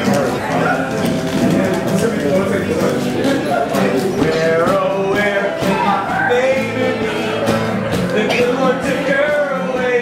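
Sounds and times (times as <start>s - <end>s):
drum beat: 0.0s - 10.0s
guitars: 0.0s - 10.0s
person singing: 3.0s - 10.0s.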